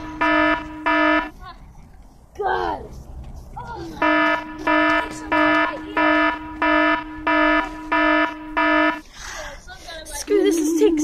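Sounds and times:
electronic alarm beeping: 0.0 - 1.4, 4.0 - 9.1.

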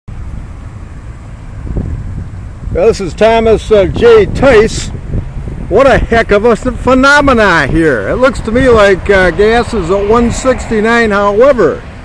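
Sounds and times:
wind buffeting microphone: 0.2 - 12.0.

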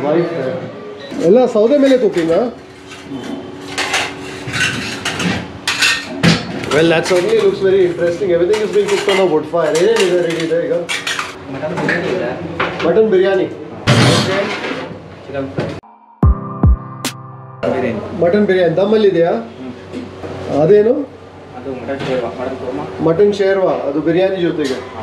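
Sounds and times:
men talking: 0.0 - 2.6, 6.7 - 13.6, 17.6 - 24.9
cooking pots and lids clanking: 2.9 - 7.5.

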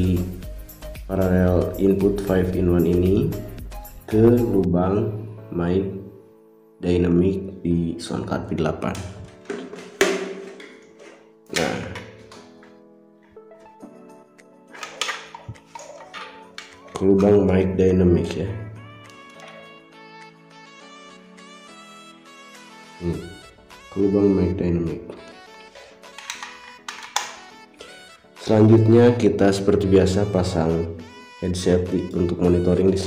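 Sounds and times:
soft background music: 0.0 - 33.0
cable handling clicks and knocks: 8.9 - 12.8, 14.7 - 17.4, 26.0 - 27.4.

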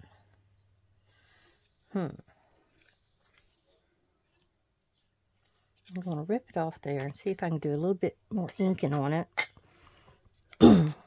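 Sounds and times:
person humming: 1.9 - 2.3
paper strip rustling: 2.4 - 7.4.

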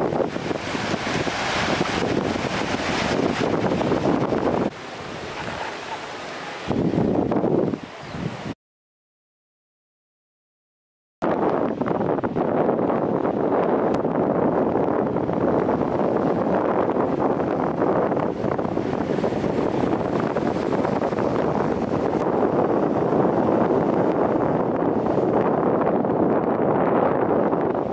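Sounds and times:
sea waves rushing: 0.0 - 8.6, 11.3 - 27.9
wind noise on microphone: 0.0 - 8.6, 11.2 - 27.9.

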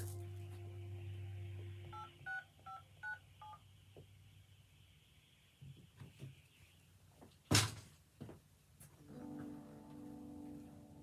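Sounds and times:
steady hum: 0.0 - 5.8.

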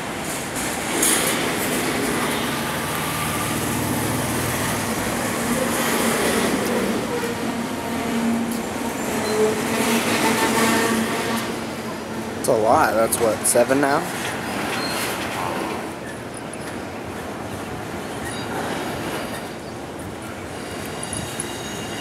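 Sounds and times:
freight train wheels rumbling: 0.0 - 22.0.

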